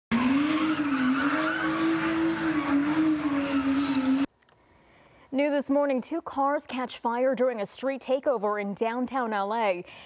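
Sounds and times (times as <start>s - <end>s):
car engine revving high: 0.1s - 4.3s.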